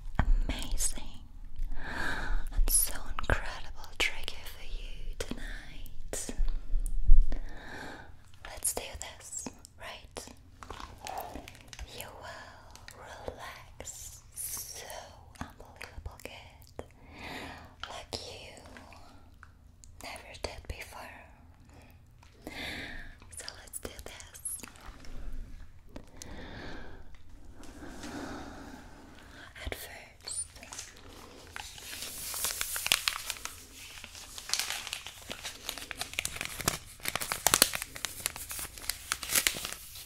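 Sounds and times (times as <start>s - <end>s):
close whispering: 0.4s - 1.3s, 8.5s - 10.4s, 11.0s - 16.9s, 23.1s - 25.2s, 27.7s - 31.8s.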